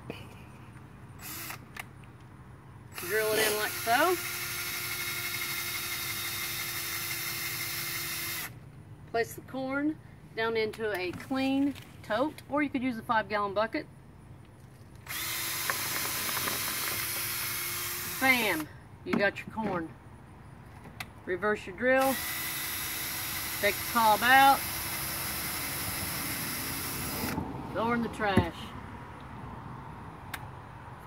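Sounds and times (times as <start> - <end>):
cordless drill motor whine: 1.2 - 1.7, 3.0 - 8.6, 15.0 - 18.7, 22.0 - 27.4.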